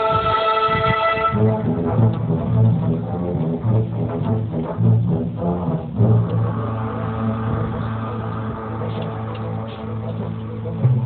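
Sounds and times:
symphony orchestra playing: 0.0s - 11.0s
long held low note: 6.2s - 10.8s.

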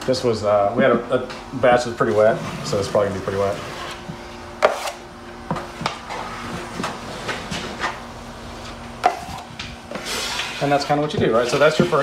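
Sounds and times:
taping knife scraping compound: 4.6s - 5.0s, 9.2s - 12.0s.

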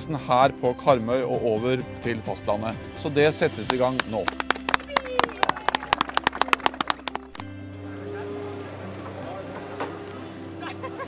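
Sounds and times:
people clapping: 3.5s - 7.4s.

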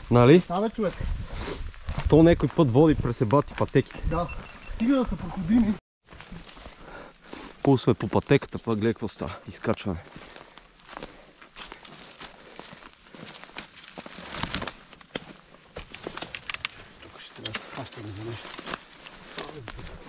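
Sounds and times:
footsteps crunching through dry leaves: 0.0s - 4.8s, 6.0s - 7.6s, 9.9s - 16.3s, 17.8s - 20.0s.

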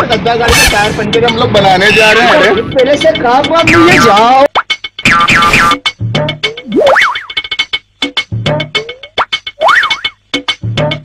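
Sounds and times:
comic cartoon music: 3.7s - 11.0s
boing-like pitch glides: 5.1s - 5.8s, 6.7s - 7.4s, 9.6s - 10.2s.

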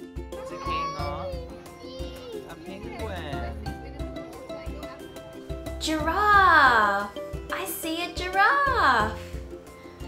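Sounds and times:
background music with beat: 0.0s - 10.0s.

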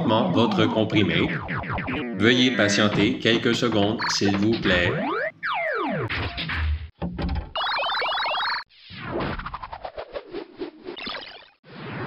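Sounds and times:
boing-like chirps: 7.6s - 8.6s.

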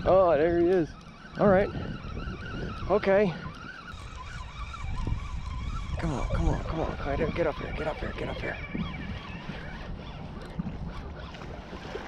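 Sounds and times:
fishing reel whine: 0.0s - 12.0s.

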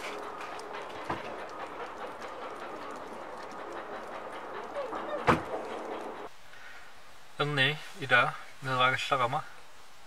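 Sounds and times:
van engine idling: 0.0s - 6.3s.

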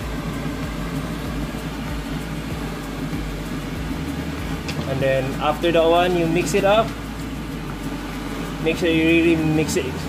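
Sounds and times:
even hiss: 0.0s - 10.0s
low mechanical hum: 0.0s - 10.0s.

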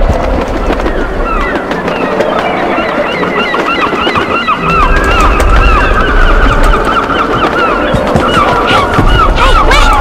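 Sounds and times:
flock of birds calling: 0.0s - 10.0s.

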